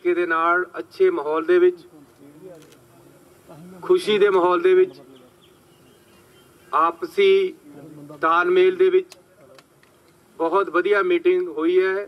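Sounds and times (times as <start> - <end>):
man speaking into a microphone: 0.0 - 5.4, 6.7 - 9.6, 10.4 - 12.0
faint steady buzz: 0.0 - 11.0.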